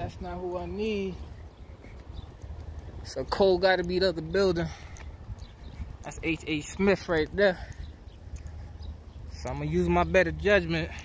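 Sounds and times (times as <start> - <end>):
footsteps on asphalt: 0.0 - 11.0.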